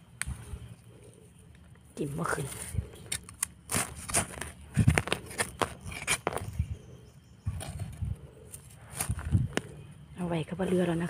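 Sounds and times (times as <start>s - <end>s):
knife scraping soil and leaves: 2.0s - 6.8s.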